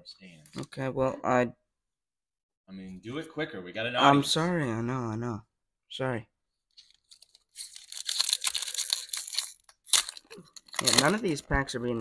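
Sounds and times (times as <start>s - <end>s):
foil wrapper crinkling: 6.8s - 11.5s
foil wrapper ripping: 6.8s - 11.5s.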